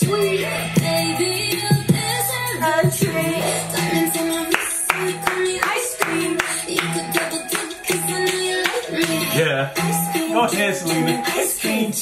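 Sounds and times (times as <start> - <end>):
pop music: 0.0 - 12.0
rhythmic hand claps: 1.6 - 11.6.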